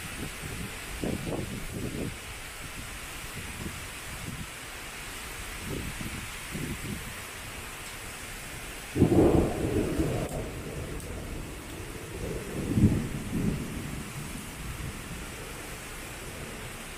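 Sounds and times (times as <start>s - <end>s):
heavy rain hissing: 0.0s - 16.9s
thunder crack and rumble: 8.9s - 16.7s.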